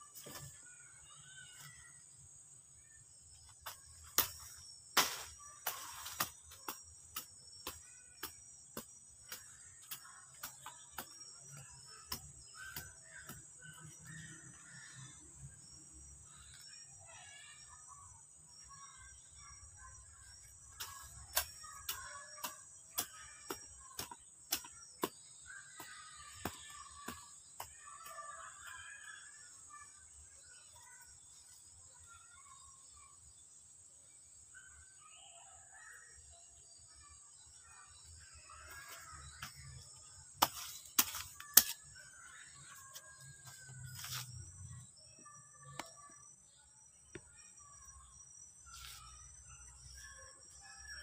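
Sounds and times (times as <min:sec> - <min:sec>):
hoe chopping into soil: 0:03.6 - 0:13.8, 0:40.4 - 0:41.9.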